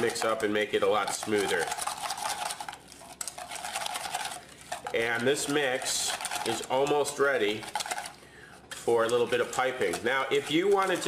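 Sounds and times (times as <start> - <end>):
whisk scraping metal bowl: 0.0 - 11.0.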